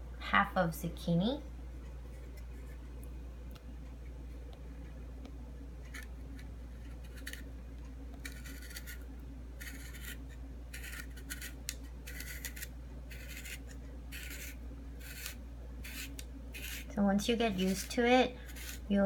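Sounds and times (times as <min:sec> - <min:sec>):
spiral slicer scraping rasps: 0:08.2 - 0:09.0, 0:09.6 - 0:19.0.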